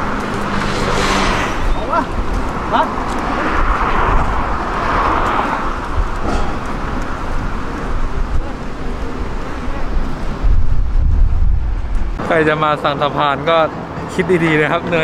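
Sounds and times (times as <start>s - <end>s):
passing cars hissing: 0.0s - 11.1s
low traffic rumble: 0.0s - 15.0s.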